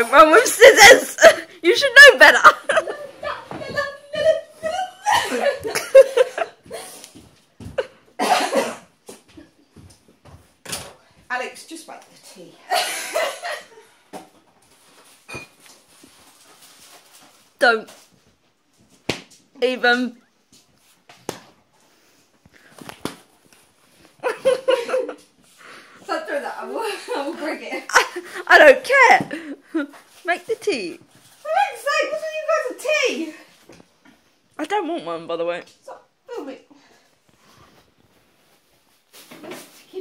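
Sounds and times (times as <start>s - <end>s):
people laughing: 24.2s - 25.2s.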